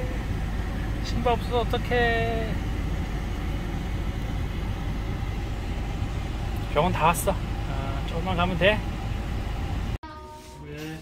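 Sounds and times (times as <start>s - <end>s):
road rumble inside car: 0.0s - 10.0s.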